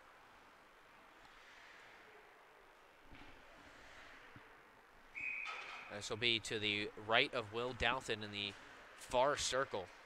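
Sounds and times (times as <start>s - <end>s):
faint ice rink ambience: 0.0s - 10.0s.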